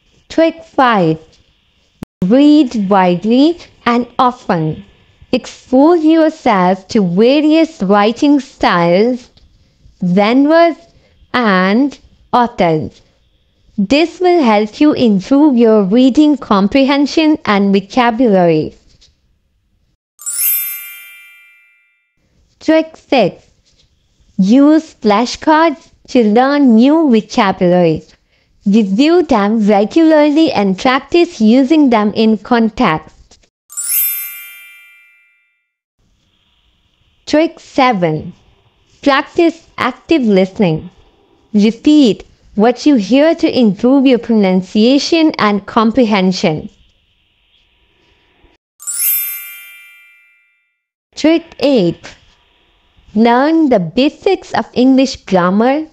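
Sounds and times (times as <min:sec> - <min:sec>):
bright ding chime: 0:20.2 - 0:22.0, 0:33.7 - 0:35.5, 0:48.8 - 0:50.6.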